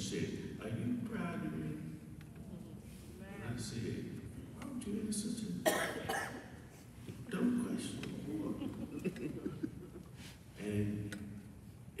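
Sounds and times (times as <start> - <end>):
person coughing: 5.6 - 6.5.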